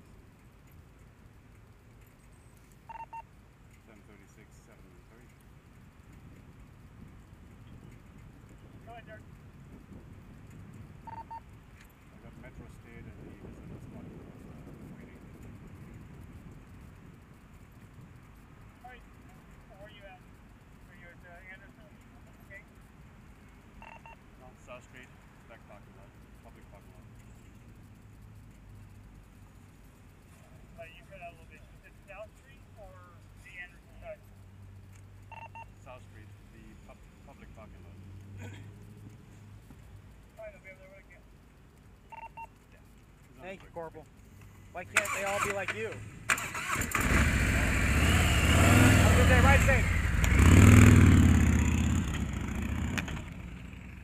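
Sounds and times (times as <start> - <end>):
low background rumble: 0.0 - 45.0
short electronic beeps: 2.9 - 3.3, 11.0 - 11.4, 23.8 - 24.2, 35.3 - 35.7, 42.1 - 42.5.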